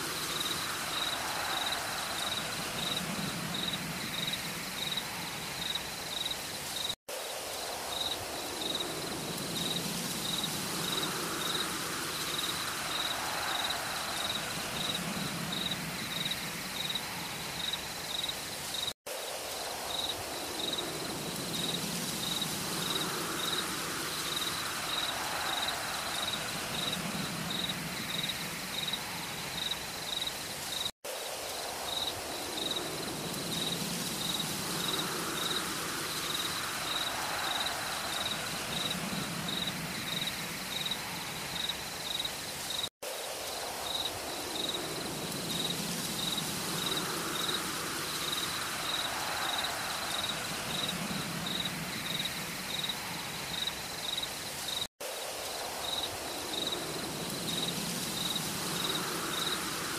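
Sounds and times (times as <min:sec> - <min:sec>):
night insects chirping: 0:00.0 - 0:59.9.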